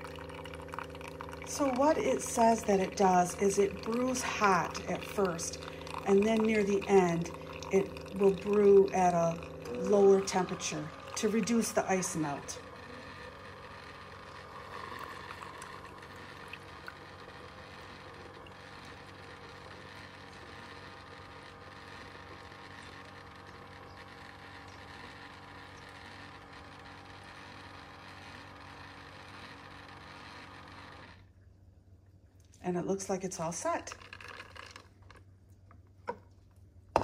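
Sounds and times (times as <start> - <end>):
coffee maker humming and hissing: 0.0 - 31.4, 32.7 - 36.2.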